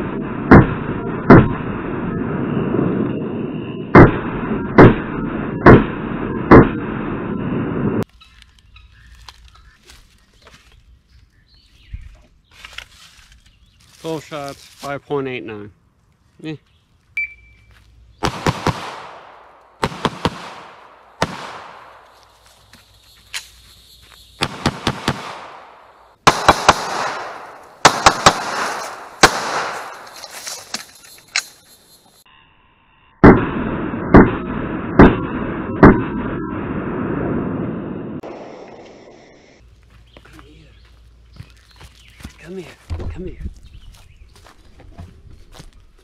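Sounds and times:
gunshots ringing through woods: 0.0 - 1.9, 3.9 - 7.2, 18.2 - 22.4, 24.4 - 30.4, 33.2 - 37.3
shot timer beep: 17.2 - 17.6.

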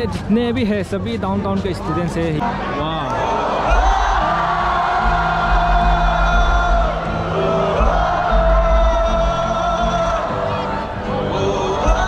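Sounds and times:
crowd noise: 0.0 - 12.0
heavy pulsing bass: 3.6 - 12.0.

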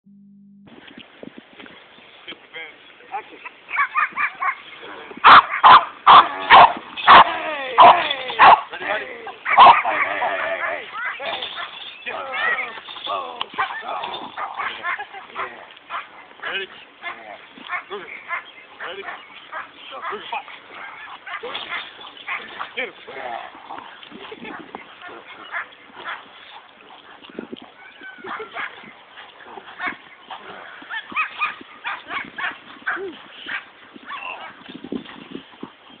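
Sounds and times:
dogs barking: 3.1 - 34.7.

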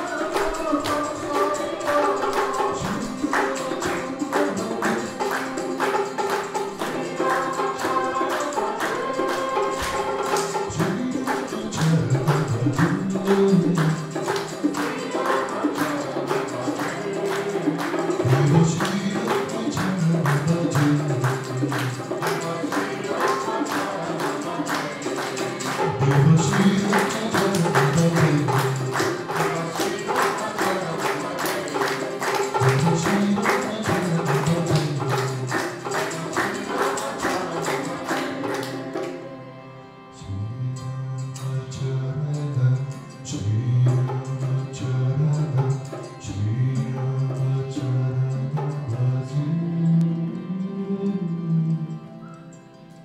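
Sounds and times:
devotional singing: 0.0 - 53.0
jingling hand percussion: 0.0 - 53.0.

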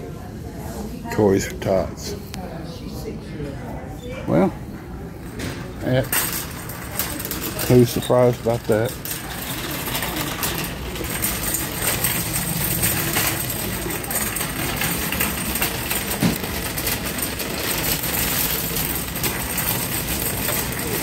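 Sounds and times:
shopping cart rattling on concrete: 5.8 - 21.0.

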